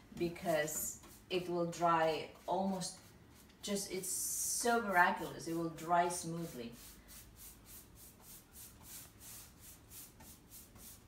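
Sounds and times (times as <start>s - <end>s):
paintbrush swishing on wood: 0.2s - 11.0s.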